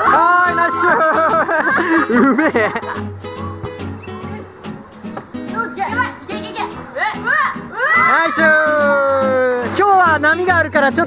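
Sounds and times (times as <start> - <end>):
children shouting excitedly: 0.0 - 2.1, 5.5 - 9.8
background music: 0.0 - 11.0.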